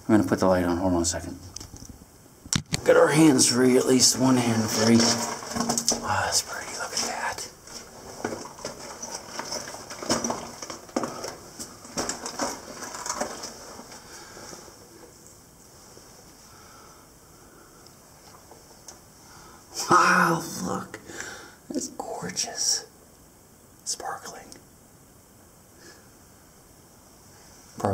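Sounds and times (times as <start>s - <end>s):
faint steady hiss: 0.0s - 27.9s
person moving over loose rock: 4.0s - 16.4s.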